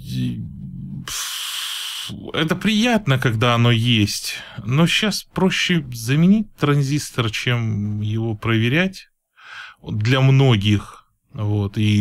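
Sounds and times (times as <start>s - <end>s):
man humming: 0.0s - 2.2s
hissing breath: 1.1s - 2.2s, 9.4s - 9.8s.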